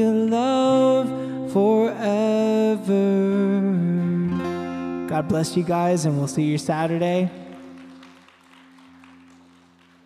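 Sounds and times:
faint scattered applause: 6.4 - 10.0.

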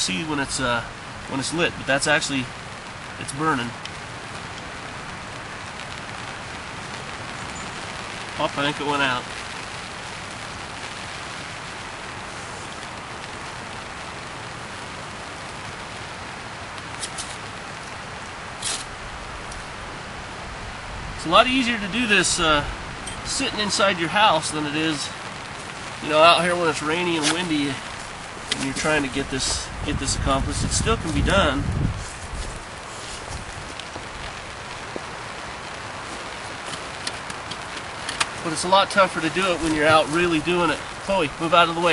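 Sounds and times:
rain pattering on a tarp: 0.0 - 41.9.

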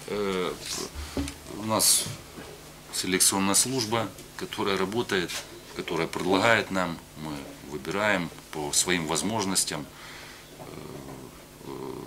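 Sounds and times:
man humming in hesitation: 10.6 - 12.0.

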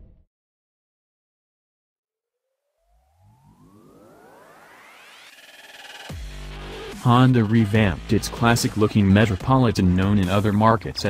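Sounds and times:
synthesized rising sweep: 2.6 - 9.4
electronic background music: 3.0 - 11.0.

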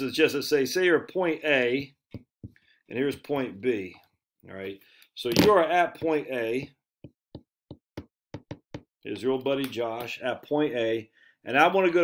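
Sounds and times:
marker tapping on whiteboard: 7.0 - 8.9.

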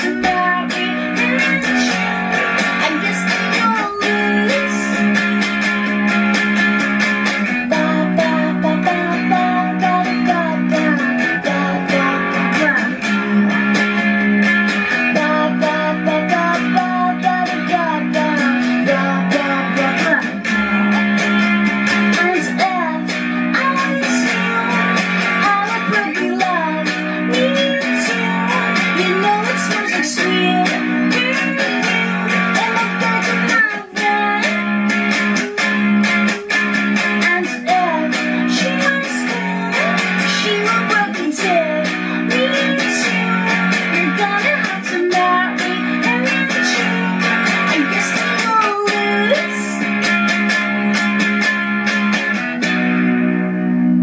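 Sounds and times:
woman singing: 0.0 - 51.0
electric guitar strummed chords: 0.0 - 54.0.

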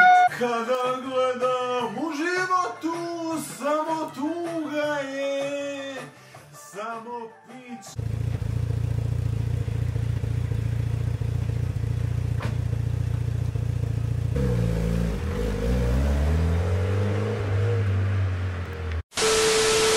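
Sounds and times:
car engine idling: 8.0 - 14.4
car engine revving and pulling away: 8.0 - 19.0.

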